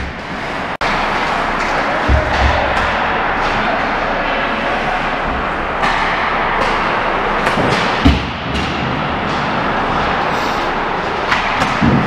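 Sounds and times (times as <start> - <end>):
sticks and pucks clacking: 0.0 - 12.0.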